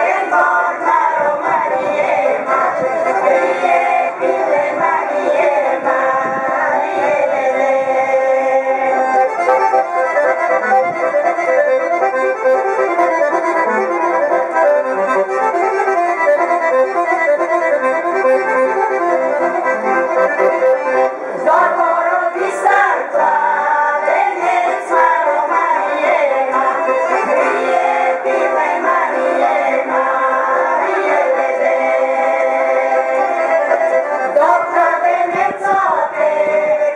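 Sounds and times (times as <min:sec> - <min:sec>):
women singing: 0:00.0 - 0:09.1, 0:21.4 - 0:36.9
accordion playing chords: 0:00.0 - 0:36.9.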